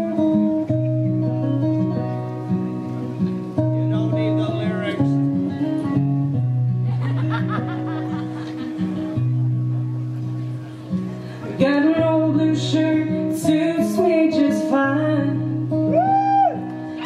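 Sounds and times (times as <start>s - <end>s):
acoustic guitar playing: 0.0s - 17.0s
woman singing: 11.6s - 15.8s.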